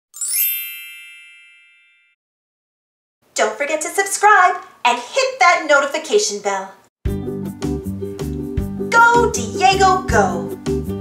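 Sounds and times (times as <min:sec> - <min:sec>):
ringing chime: 0:00.2 - 0:02.2
shimmering tinkle: 0:00.2 - 0:02.2.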